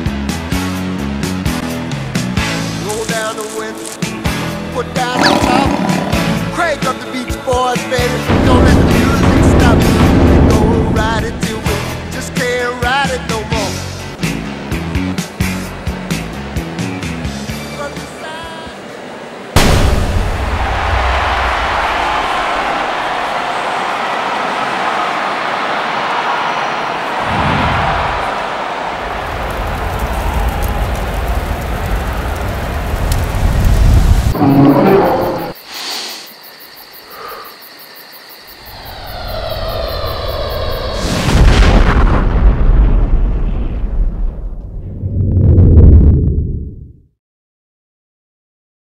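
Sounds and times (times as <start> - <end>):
long rumbling roar: 5.1 - 6.7, 34.2 - 35.6, 38.6 - 42.9
loud boom: 8.3 - 12.0, 19.6 - 21.7, 38.7 - 46.8.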